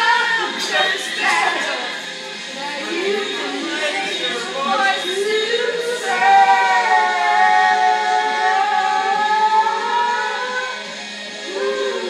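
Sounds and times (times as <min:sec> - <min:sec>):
woman singing karaoke: 0:00.0 - 0:12.0.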